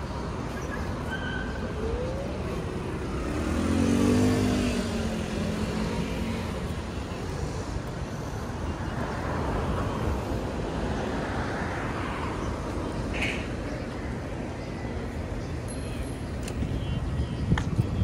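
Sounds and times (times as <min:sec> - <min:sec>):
background traffic noise: 0:00.0 - 0:18.0
vehicle passing close by: 0:02.6 - 0:06.7.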